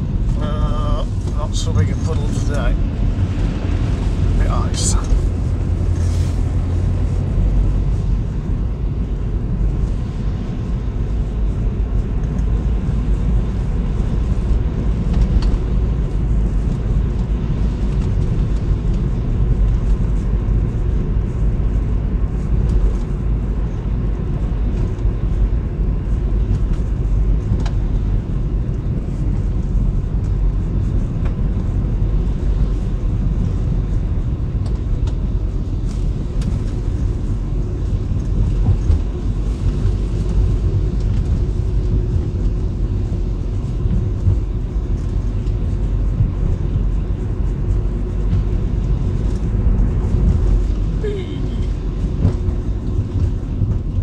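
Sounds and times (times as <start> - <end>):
car engine rumble: 0.0 - 54.0
tyres on wet road: 0.0 - 54.0.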